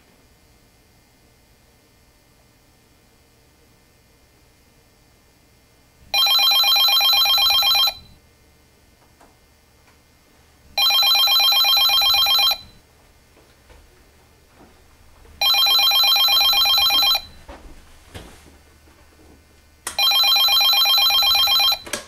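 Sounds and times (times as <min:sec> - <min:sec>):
telephone bell ringing: 0:06.1 - 0:08.1, 0:10.8 - 0:12.8, 0:15.4 - 0:17.3, 0:20.0 - 0:21.9.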